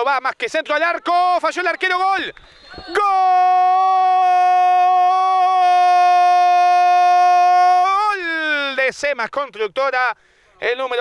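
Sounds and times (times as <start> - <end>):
commentator talking: 0.0 - 3.4, 8.2 - 11.0.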